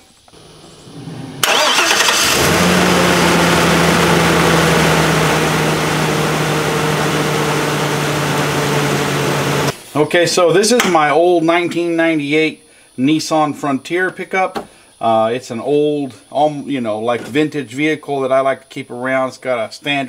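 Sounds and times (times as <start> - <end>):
pickup engine cranking and idling: 0.3 - 9.7.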